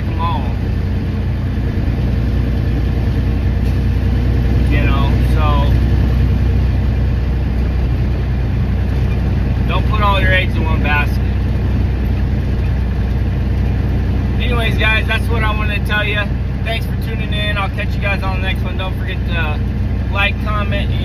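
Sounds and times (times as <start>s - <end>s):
man's voice: 0.0s - 0.6s, 9.7s - 11.3s, 14.4s - 21.0s
diesel truck engine droning: 0.0s - 21.0s.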